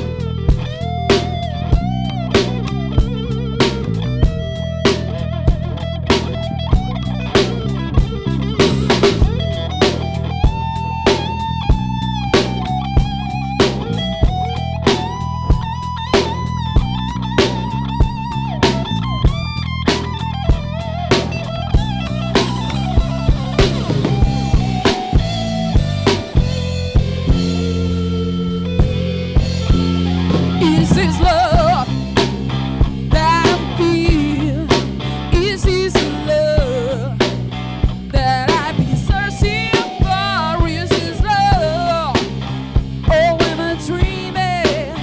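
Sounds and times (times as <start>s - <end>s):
bass: 0.0s - 45.0s
drum beat: 0.0s - 45.0s
electric guitar lead melody: 0.0s - 45.0s.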